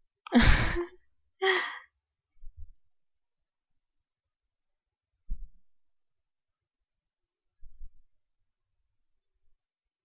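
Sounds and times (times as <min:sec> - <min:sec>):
person sighing: 0:00.3 - 0:01.9.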